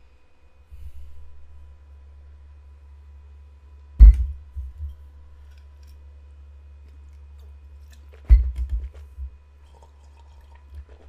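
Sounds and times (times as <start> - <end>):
steady low hum: 0.0 - 11.0
loud low thud: 4.0 - 4.9, 8.3 - 9.4.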